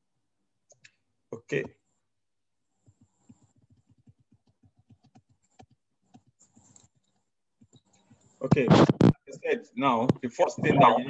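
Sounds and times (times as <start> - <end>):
keyboard typing: 2.8 - 9.1.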